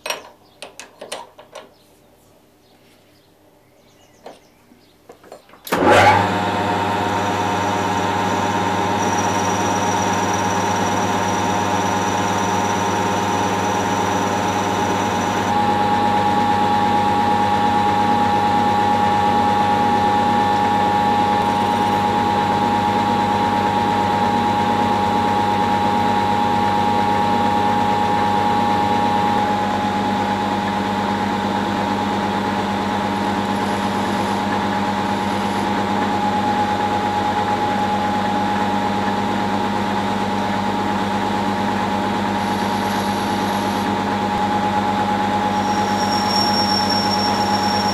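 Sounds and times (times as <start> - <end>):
metal lathe motor humming: 5.7 - 47.9.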